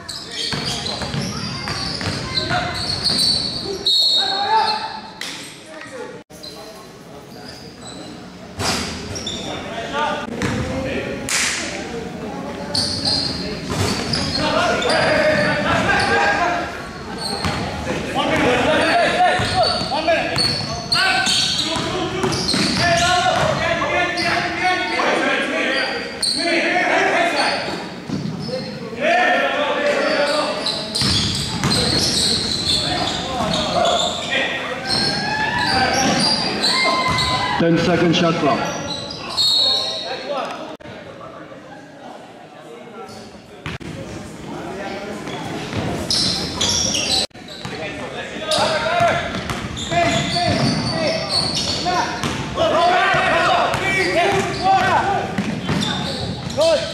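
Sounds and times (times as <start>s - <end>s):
voices calling out: 12.4s - 40.8s.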